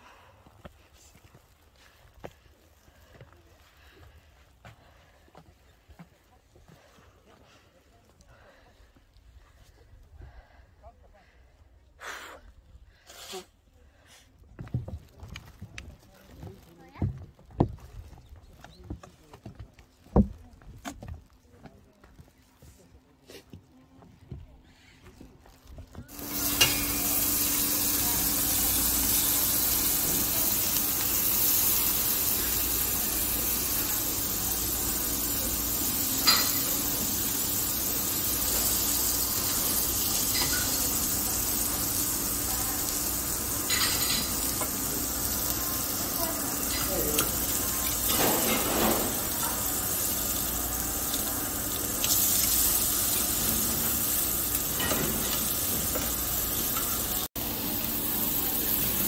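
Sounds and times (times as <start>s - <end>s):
pork sizzling on a grill: 16.0s - 17.8s, 25.6s - 59.0s.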